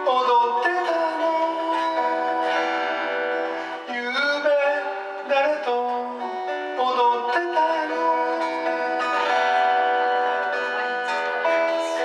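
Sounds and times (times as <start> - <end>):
acoustic guitar chord: 0.0 - 12.0
man singing: 0.0 - 12.0.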